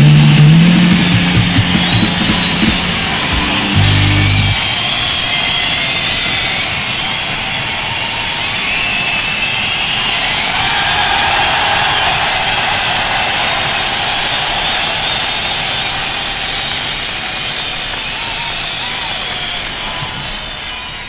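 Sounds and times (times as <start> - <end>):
distorted electric guitar: 0.0 - 4.7
ringing cymbals: 0.6 - 4.6.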